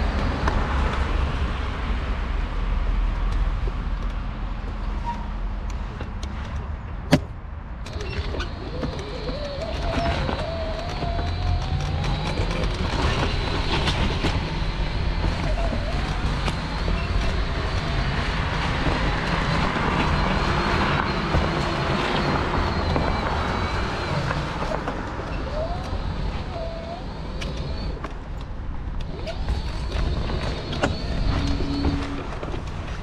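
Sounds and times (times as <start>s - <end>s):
mobility scooter motor: 7.9s - 33.0s
tyres on snow: 7.9s - 33.0s.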